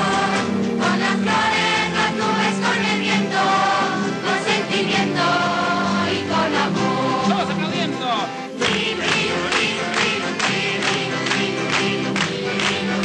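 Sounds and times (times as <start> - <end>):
choir singing: 0.0 - 7.8, 8.5 - 13.0
instrumental accompaniment: 0.0 - 13.0.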